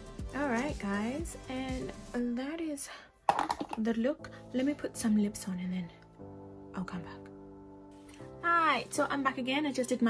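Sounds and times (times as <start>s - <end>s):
woman's voice: 0.3s - 6.0s.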